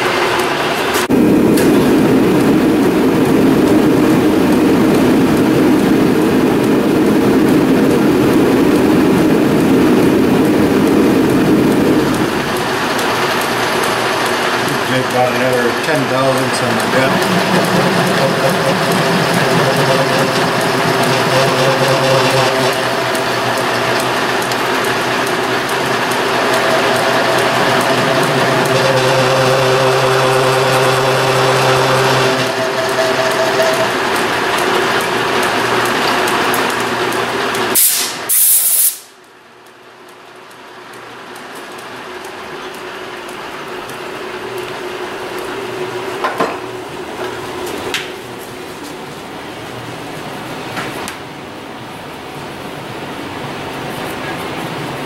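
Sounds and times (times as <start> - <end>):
metal lathe whining: 4.4 - 37.8
sharp hissing bursts: 37.8 - 39.2.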